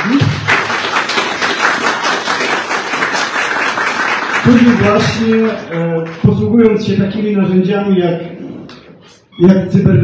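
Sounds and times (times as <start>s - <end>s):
audience applauding: 0.0s - 6.2s.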